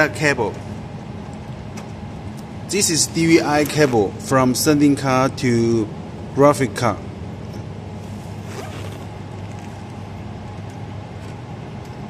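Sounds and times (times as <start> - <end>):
low background hum: 0.0 - 12.0
cable rustling and scraping: 8.0 - 10.2.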